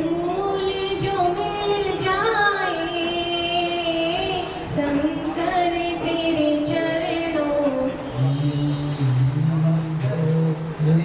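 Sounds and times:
man chanting: 7.6 - 11.0.

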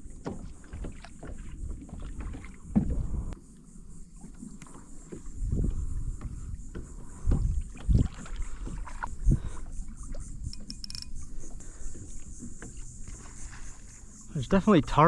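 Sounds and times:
bumps against plastic hull: 5.1 - 9.5.

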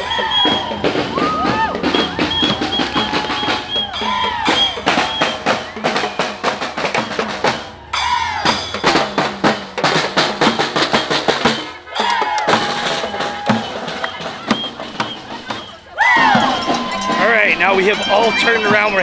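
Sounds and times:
people shouting: 0.0 - 9.2, 11.4 - 19.0
hand drums beaten fast: 0.0 - 19.0.

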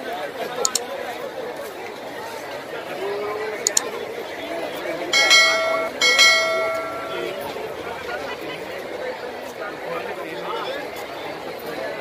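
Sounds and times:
bell-like chime: 5.2 - 7.4.

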